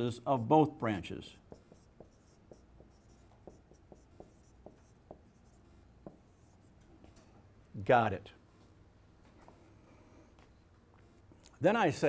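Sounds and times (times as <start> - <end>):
marker writing on whiteboard: 1.4 - 7.2.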